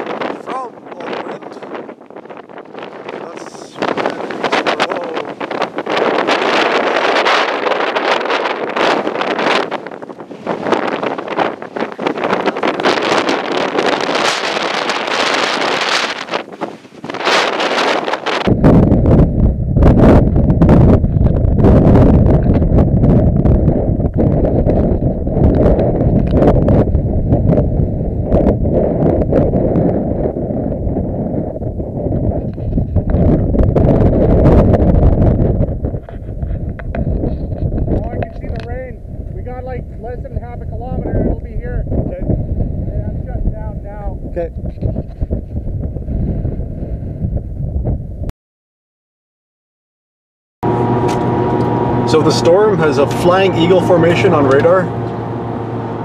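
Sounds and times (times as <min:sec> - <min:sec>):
strong wind buffeting microphone: 0:00.0 - 0:48.3, 0:50.6 - 0:56.0.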